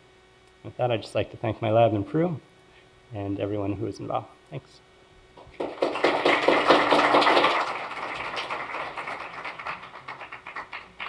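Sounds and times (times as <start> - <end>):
audience applauding: 5.5 - 11.0.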